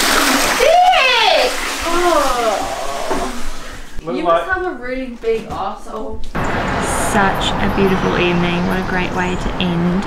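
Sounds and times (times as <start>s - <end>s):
toilet flushing: 0.0s - 4.0s.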